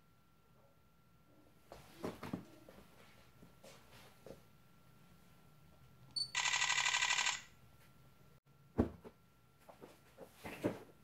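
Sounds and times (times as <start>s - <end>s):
camera autofocus beep: 6.2s - 7.5s.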